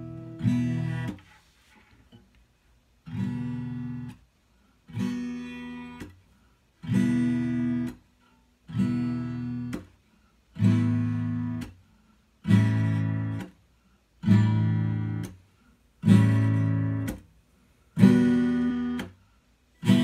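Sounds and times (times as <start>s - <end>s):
acoustic guitar strumming chords: 0.0s - 1.4s, 3.0s - 4.3s, 4.9s - 8.1s, 8.7s - 13.6s, 14.2s - 17.3s, 18.0s - 19.2s, 19.8s - 20.0s.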